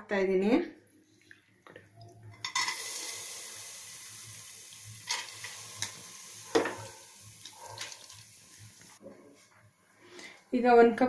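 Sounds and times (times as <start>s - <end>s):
faint sizzling of frying: 2.2s - 10.4s.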